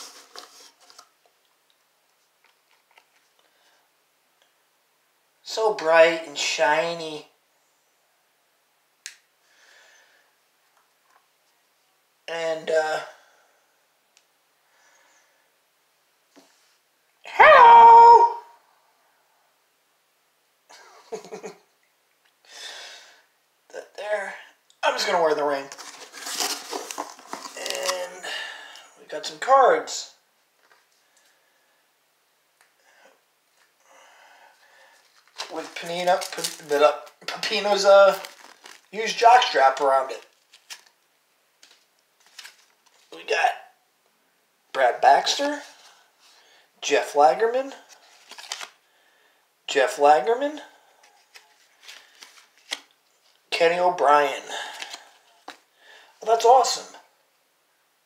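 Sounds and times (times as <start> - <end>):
plastic packaging crinkling: 0.0 - 1.2, 25.6 - 28.2, 35.0 - 41.0, 41.6 - 43.2, 47.9 - 48.8, 51.1 - 53.0.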